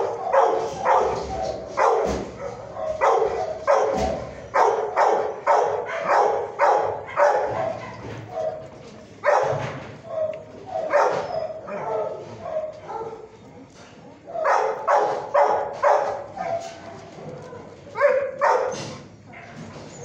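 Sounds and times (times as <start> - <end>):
dog barking: 0.0 - 13.3, 14.4 - 19.8
dog yipping and whining: 10.1 - 11.9, 19.8 - 20.0.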